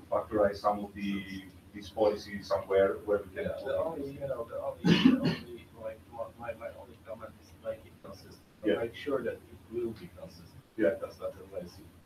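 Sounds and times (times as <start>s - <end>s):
low speech: 0.0s - 12.0s
person clearing throat: 4.8s - 5.6s.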